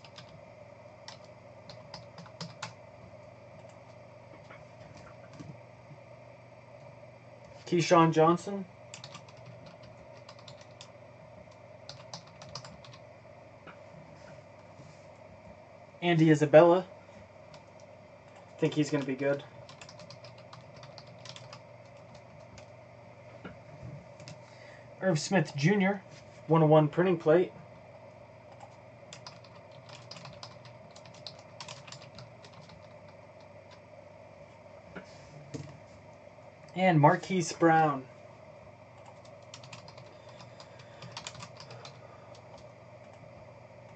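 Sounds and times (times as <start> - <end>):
keyboard typing: 0.0 - 0.4, 1.0 - 2.8, 8.9 - 10.9, 11.5 - 13.0, 17.5 - 22.7, 24.2 - 24.4, 28.5 - 33.8, 39.0 - 43.3
faint steady hum: 0.0 - 43.9.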